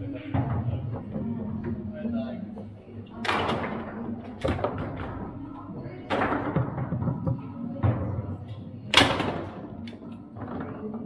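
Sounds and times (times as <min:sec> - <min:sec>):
foosball ball and rods knocking: 0:02.5 - 0:11.0.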